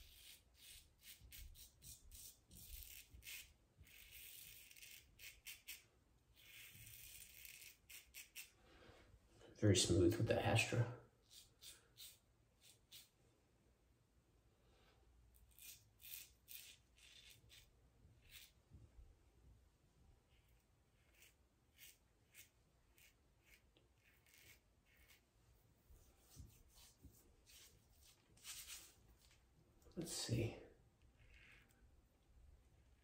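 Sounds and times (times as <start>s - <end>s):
razor scraping stubble: 0.0s - 8.5s, 11.2s - 13.2s, 15.4s - 18.6s, 20.3s - 25.3s, 26.2s - 29.4s, 31.1s - 31.8s.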